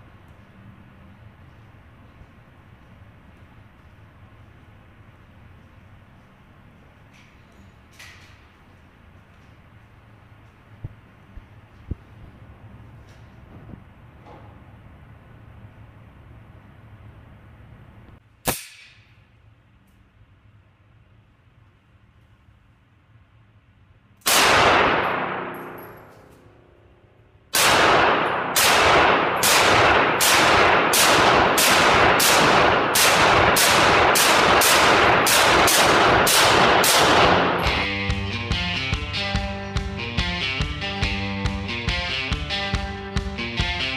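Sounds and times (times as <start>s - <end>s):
pistol shots echoing indoors: 24.2s - 38.1s.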